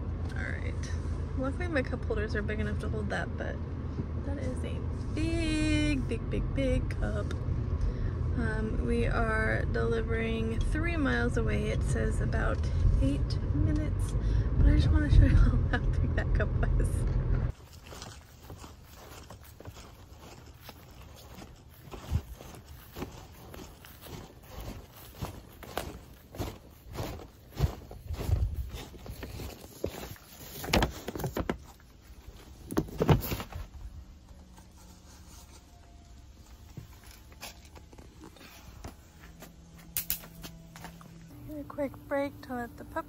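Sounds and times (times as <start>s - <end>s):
footsteps on grass and stones: 17.5s - 33.8s.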